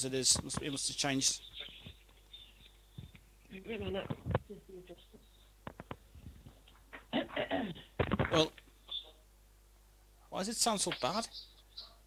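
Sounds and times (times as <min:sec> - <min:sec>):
voices over a call: 0:10.5 - 0:11.4.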